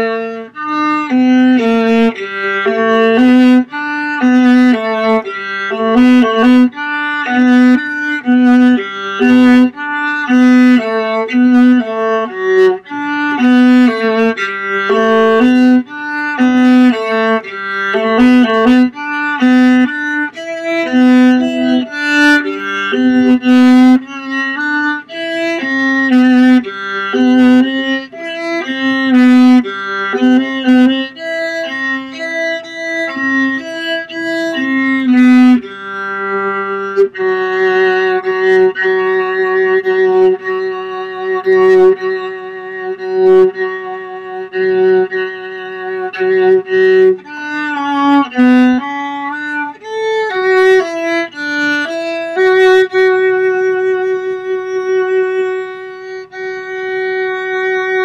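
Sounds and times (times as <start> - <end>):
solo viola bowed: 0.0 - 58.0.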